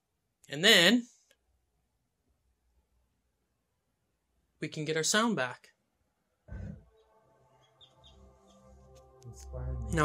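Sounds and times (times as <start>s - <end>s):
quiet film music: 6.2s - 10.0s
bird chirps: 7.6s - 8.7s.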